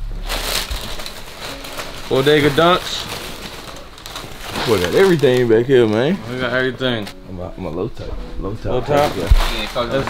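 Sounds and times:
tissue paper rustling: 0.0s - 10.0s.

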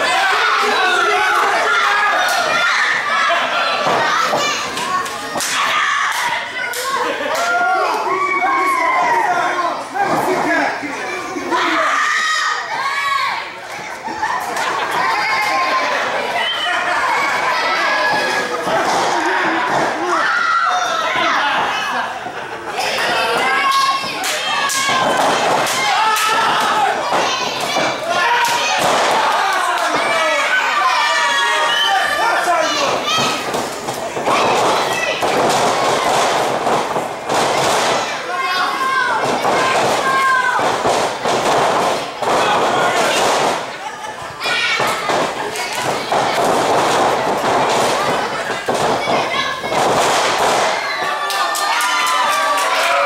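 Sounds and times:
audience shouting and calling out: 0.0s - 37.3s, 37.9s - 53.0s
crowd voices: 0.0s - 53.0s.

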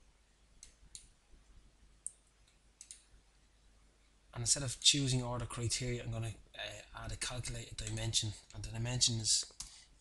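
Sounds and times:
computer mouse clicks: 0.6s - 1.1s, 2.0s - 3.1s.

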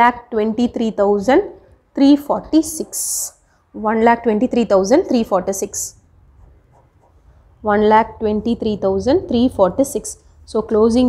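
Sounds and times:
woman speaking: 0.0s - 6.0s, 7.6s - 11.0s
ballpoint pen writing on paper: 6.4s - 7.2s.

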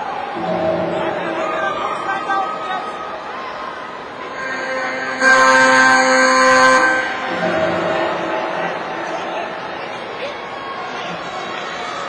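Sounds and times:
scoreboard buzzer: 4.3s - 9.0s.

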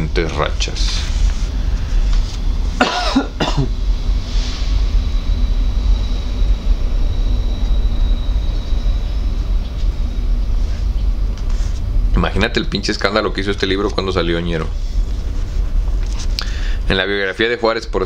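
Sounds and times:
low background rumble: 0.0s - 18.0s
man coughing: 2.8s - 3.8s.

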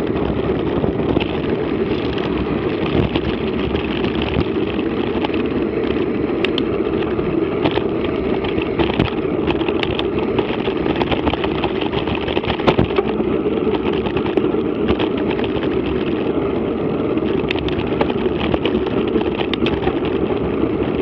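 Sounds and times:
bike rattling over bumps: 0.0s - 21.0s
wind and tyres on gravel: 0.0s - 21.0s.

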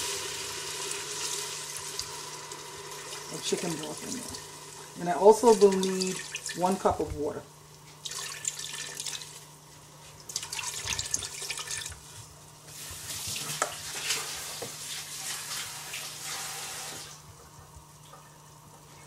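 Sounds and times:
liquid pouring into a metal pot: 8.0s - 9.5s.

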